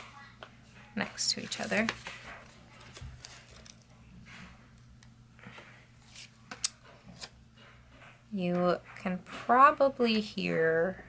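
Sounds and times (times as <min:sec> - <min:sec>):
low electrical hum: 0:00.0 - 0:11.0
sticker paper rustling and clicks: 0:01.5 - 0:04.4.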